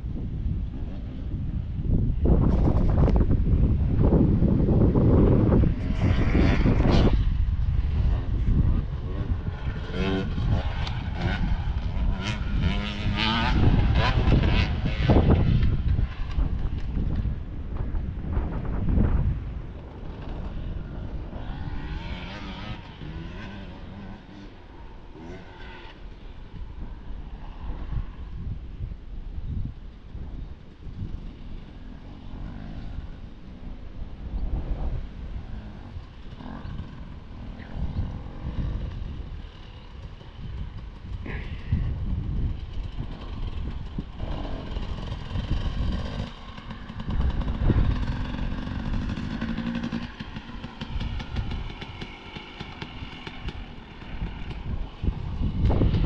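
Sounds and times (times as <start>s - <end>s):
dirt bike engines: 0.0s - 56.0s
wind buffeting microphone: 0.0s - 56.0s.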